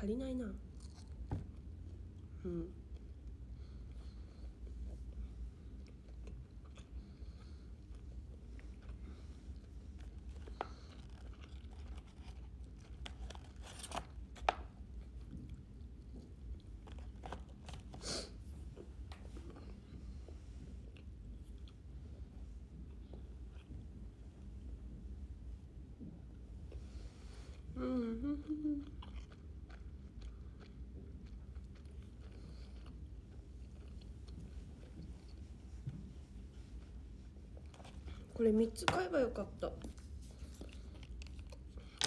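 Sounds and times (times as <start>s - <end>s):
low steady hum: 0.0s - 42.0s
hummed mm: 2.3s - 3.2s, 27.5s - 29.2s.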